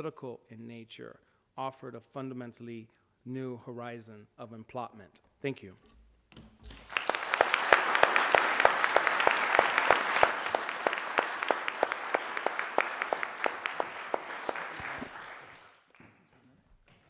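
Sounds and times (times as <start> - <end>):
audience applauding: 6.7 - 16.2.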